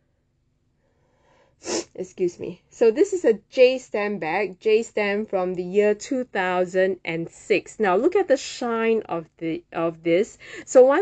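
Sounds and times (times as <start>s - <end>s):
faint intake of breath: 0.8s - 1.9s
woman sneezing: 1.6s - 2.0s.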